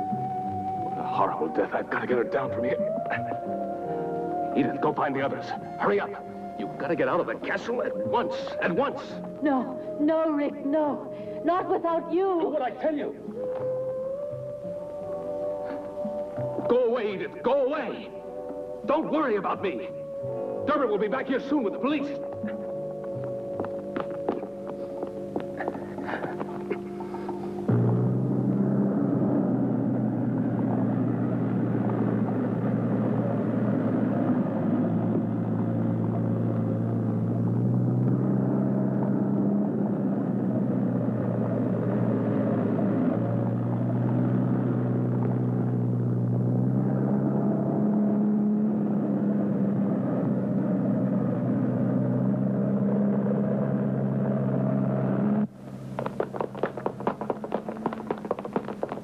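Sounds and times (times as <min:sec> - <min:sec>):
car engine running: 0:18.8 - 0:59.0
footsteps: 0:22.2 - 0:28.1, 0:55.7 - 0:59.0.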